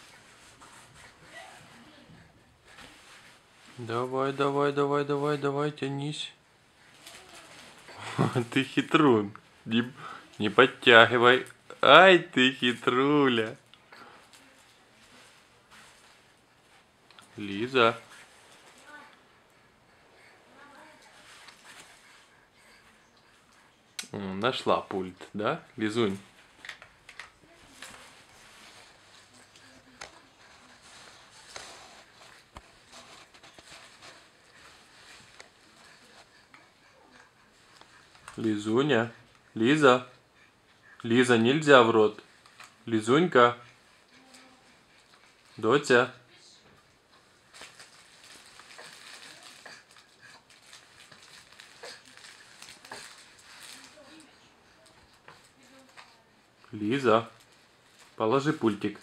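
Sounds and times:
faint rustling: 0.0 - 5.6, 6.3 - 42.9, 43.5 - 59.0
soft baby vocal sounds: 6.8 - 8.2, 18.0 - 24.2, 27.4 - 41.2, 43.6 - 45.6, 46.2 - 56.7.

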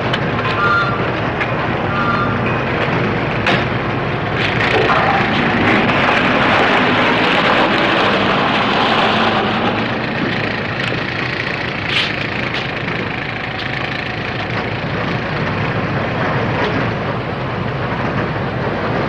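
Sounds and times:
plant machinery running: 0.0 - 19.0
rumble of vehicle engines: 0.0 - 19.0.

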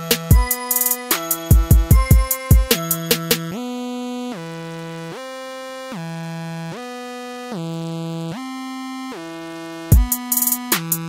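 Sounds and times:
sliding synthesizer notes: 0.0 - 9.4.

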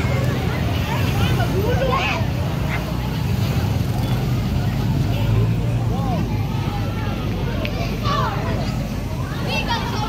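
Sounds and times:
scattered voices: 0.0 - 10.0.

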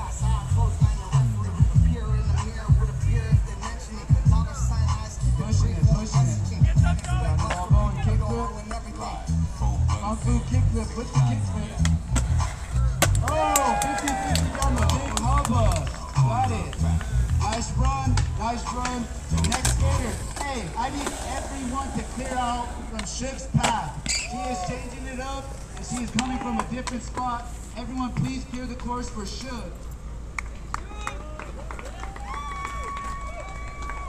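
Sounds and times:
hip-hop music with heavy bass: 0.0 - 24.0
voices: 0.0 - 29.8
skateboard clacking on concrete: 13.0 - 21.5, 25.7 - 27.3.

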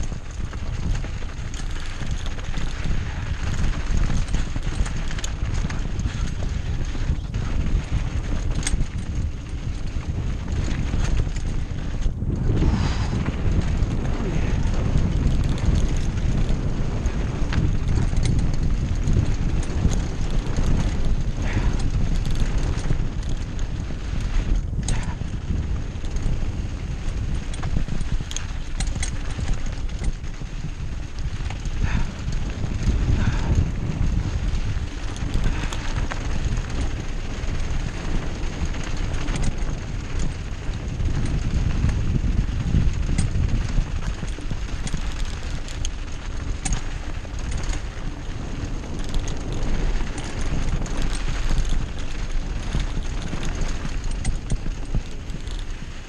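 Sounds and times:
bike clattering over bumps: 0.0 - 56.0
bike tyres on loose dirt: 0.0 - 56.0
wind buffeting microphone: 0.0 - 56.0.

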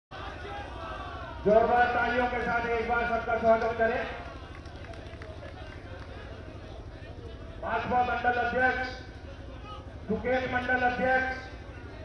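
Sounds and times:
faint crowd murmur: 0.1 - 12.0.

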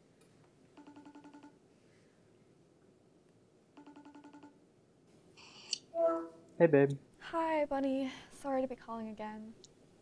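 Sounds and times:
phone ringing with trilling rings: 0.8 - 1.6, 3.8 - 4.6.

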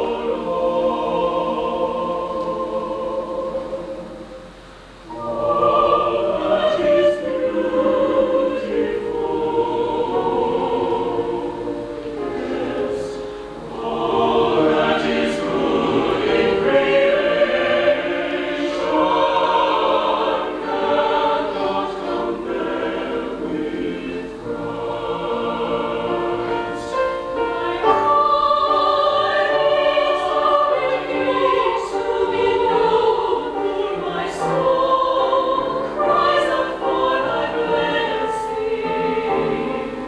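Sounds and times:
choir singing sustained chords: 0.0 - 40.0.

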